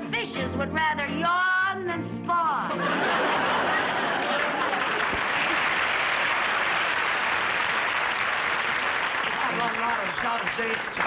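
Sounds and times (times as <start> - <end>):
audience applauding: 3.2 - 11.0.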